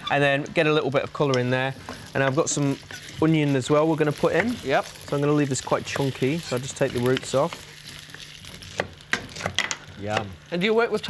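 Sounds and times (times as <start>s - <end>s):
potatoes sizzling in pan: 0.0s - 11.0s.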